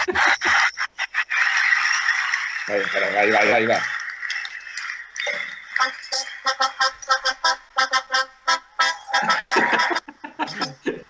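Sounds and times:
man laughing in short bursts: 0:09.2 - 0:11.0.

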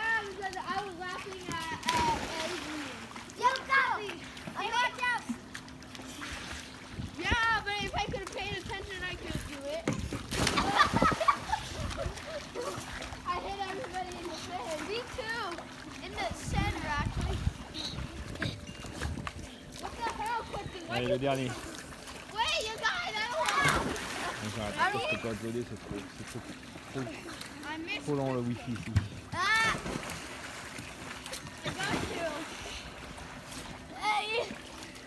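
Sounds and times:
water splashing in pool: 0:00.0 - 0:35.0.

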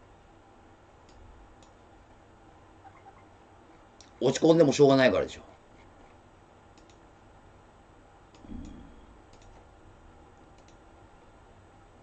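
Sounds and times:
low hum: 0:00.0 - 0:12.0
faint short clicks: 0:06.7 - 0:07.0, 0:10.5 - 0:10.8.

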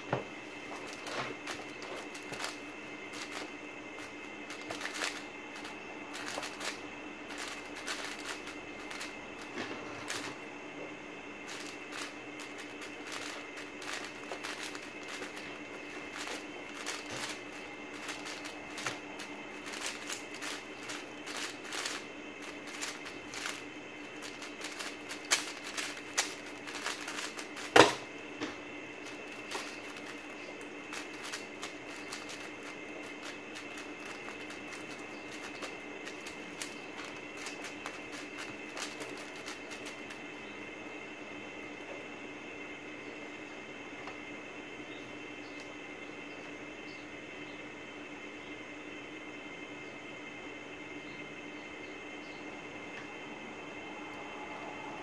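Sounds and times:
plastic puzzle cube clicking: 0:04.5 - 0:05.2, 0:24.2 - 0:28.0, 0:30.9 - 0:40.1.

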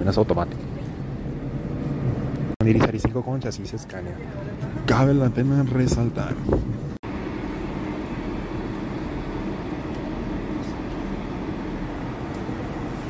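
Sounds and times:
diesel bus engine idling: 0:03.6 - 0:13.0.

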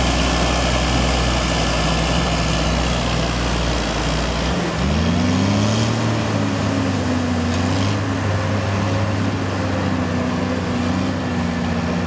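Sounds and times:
truck engine running under load: 0:00.0 - 0:12.0.

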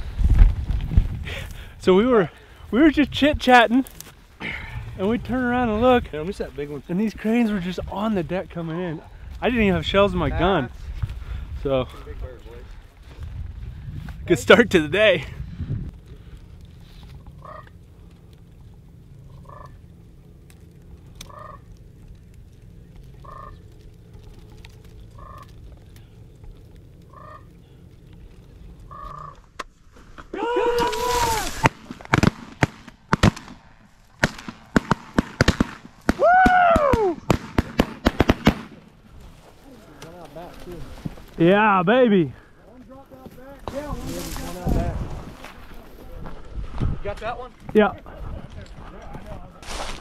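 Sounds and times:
cranes calling: 0:16.0 - 0:33.6
shotgun shots: 0:31.5 - 0:36.2, 0:37.2 - 0:38.8.

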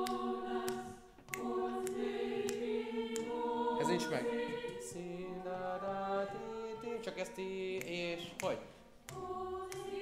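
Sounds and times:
choir singing held chords: 0:00.0 - 0:07.8, 0:08.8 - 0:10.0.

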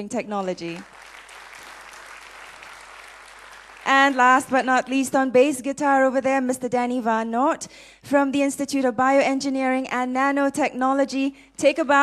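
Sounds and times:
audience applauding: 0:00.6 - 0:04.6.

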